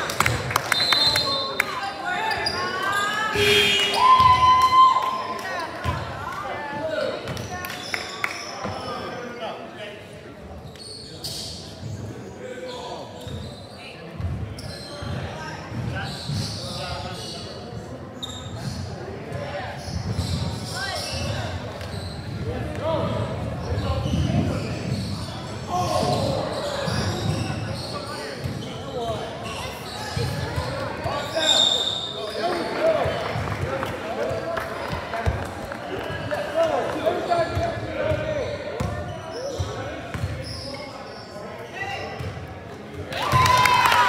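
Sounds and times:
voices in a gym hall: 0.0s - 44.0s.

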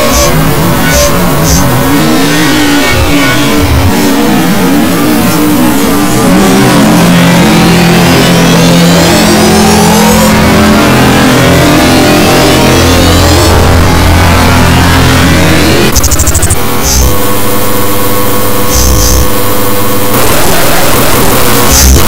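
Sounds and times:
steady low drone: 0.0s - 21.8s
warbling distorted tones: 0.0s - 22.0s.

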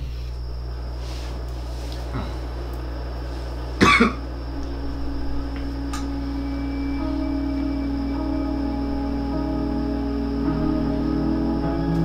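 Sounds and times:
ambient music drone: 0.0s - 12.0s
steady low hum: 0.0s - 12.0s
person coughing: 3.8s - 4.2s.

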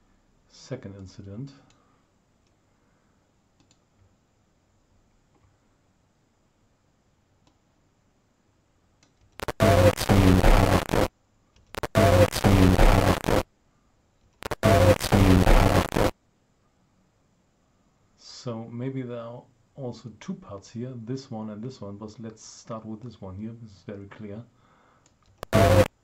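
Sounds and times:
faint clicks: 3.6s - 4.1s
buzzy crackling distorted signal: 9.4s - 11.1s, 11.7s - 13.5s, 14.4s - 16.2s, 25.4s - 26.0s.

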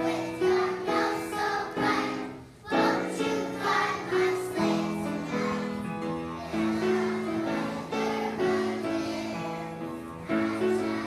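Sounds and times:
children singing in chorus: 0.0s - 11.0s.

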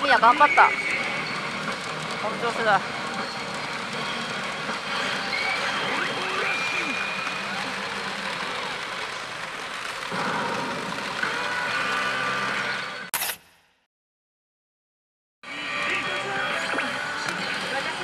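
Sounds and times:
electronic machine sound effects: 0.0s - 8.8s
machines and steel balls noise: 0.0s - 13.5s.

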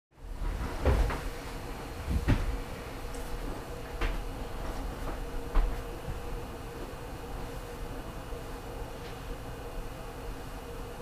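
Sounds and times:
low steady hum: 0.2s - 11.0s.

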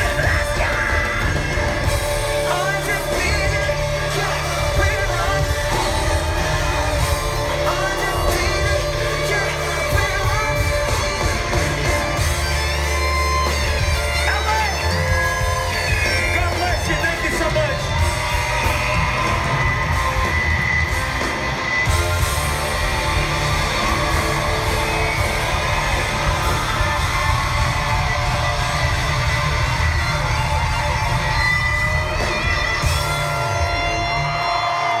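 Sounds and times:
live band playing amplified music: 0.0s - 35.0s.

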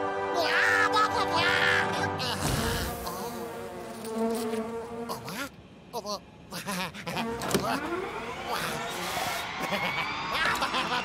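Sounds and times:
cartoon fly buzzing: 2.2s - 5.5s.

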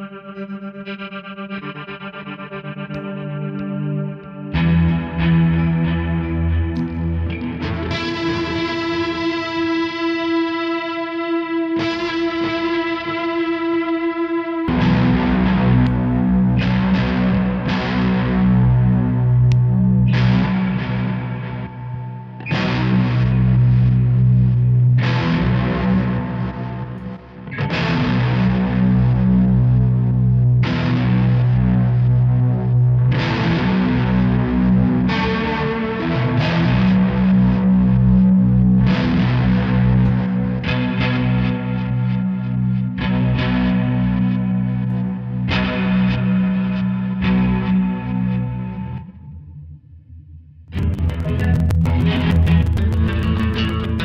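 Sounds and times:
distorted electric guitar chords: 0.0s - 54.0s.

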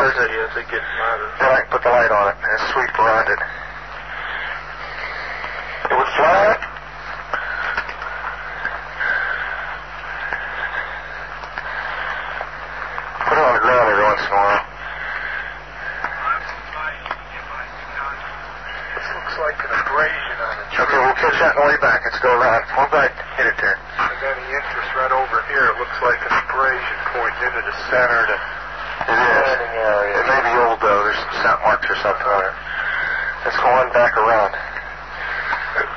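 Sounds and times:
low hum: 0.0s - 35.9s
men talking indistinctly: 0.0s - 35.9s
tape hiss: 0.0s - 35.9s.

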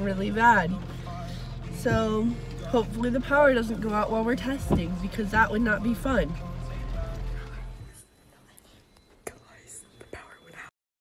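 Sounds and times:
faint whispering voices: 7.4s - 10.7s.

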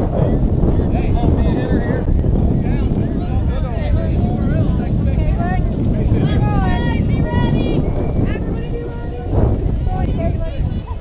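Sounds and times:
wind rumbling on microphone: 0.0s - 11.0s
girls calling out and cheering: 6.2s - 11.0s.

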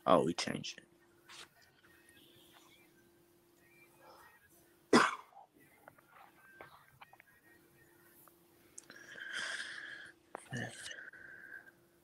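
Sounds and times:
person coughing: 5.0s - 5.4s.

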